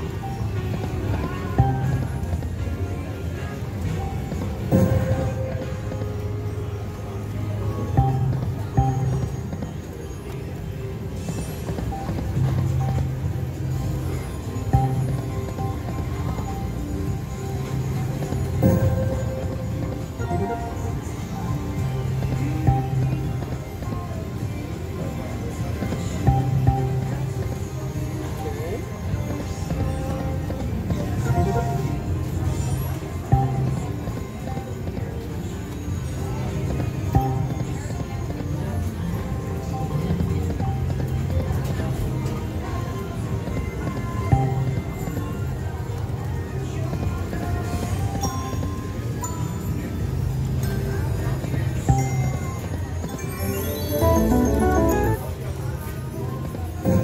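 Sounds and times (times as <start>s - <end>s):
slot machine game music: 0.3s - 29.2s, 53.2s - 55.6s
slot machine spin effects: 53.2s - 55.5s.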